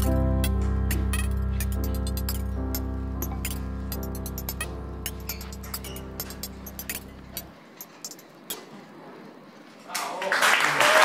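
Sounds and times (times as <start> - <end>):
sustained bass note: 0.0 - 7.5.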